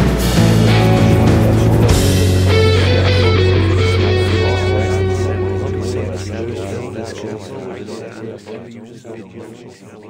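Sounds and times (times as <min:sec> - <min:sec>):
instrumental rock music: 0:00.0 - 0:07.0.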